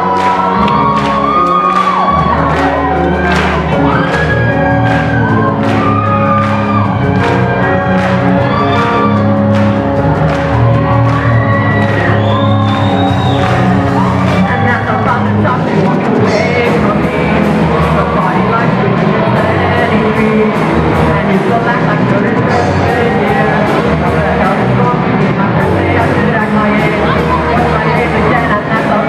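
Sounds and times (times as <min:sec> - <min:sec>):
bending guitar lead line: 0:00.0 - 0:29.0
live rock band playing: 0:00.0 - 0:29.0.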